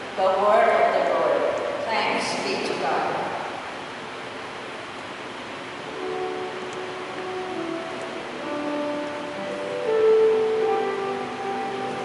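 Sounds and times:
faint church hum: 0.0s - 12.0s
organ playing held chords: 5.6s - 12.0s.

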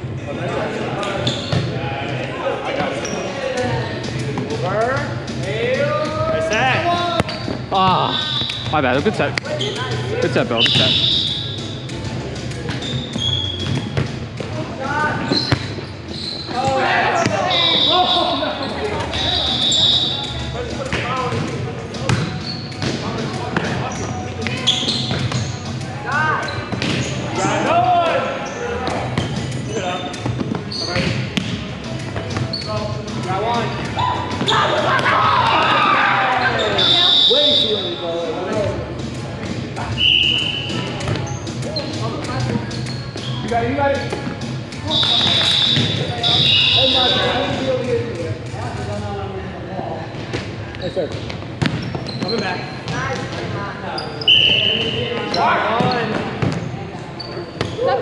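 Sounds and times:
balls bouncing on hardwood floor: 7.1s - 7.6s, 12.6s - 14.6s, 15.2s - 15.8s, 20.9s - 23.8s, 26.7s - 27.2s, 40.7s - 41.3s, 45.2s - 46.2s, 51.1s - 53.5s
volleyballs being struck: 7.1s - 7.6s
short high-pitched squeaks: 12.8s - 13.7s.

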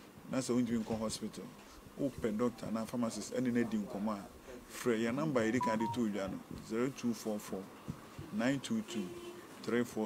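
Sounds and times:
man speaking: 2.1s - 6.4s
short electronic beeps: 5.5s - 6.0s.

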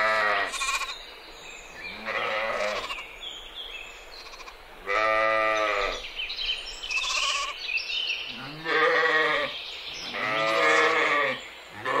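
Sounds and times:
sheep bleating: 0.0s - 1.0s, 1.9s - 3.1s, 4.2s - 6.0s, 6.9s - 7.6s, 8.4s - 9.5s, 10.1s - 12.0s.

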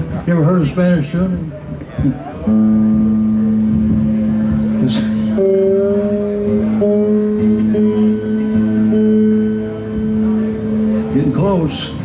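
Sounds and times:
electric guitar sustained note: 2.4s - 12.0s.

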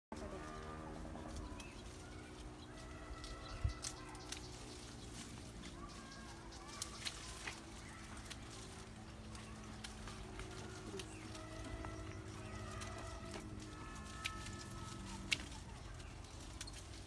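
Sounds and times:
birds calling: 0.2s - 17.0s
pruning shears snipping: 1.2s - 17.0s.

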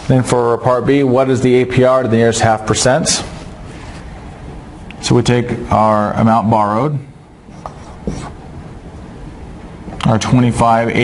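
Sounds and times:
low room noise: 0.0s - 11.0s
marker writing on whiteboard: 7.5s - 8.4s.

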